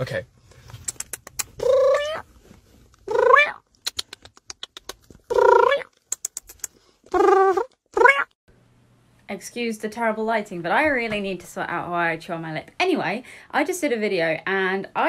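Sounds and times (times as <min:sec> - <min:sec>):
cat meowing: 0:01.6 - 0:02.2, 0:07.2 - 0:08.3.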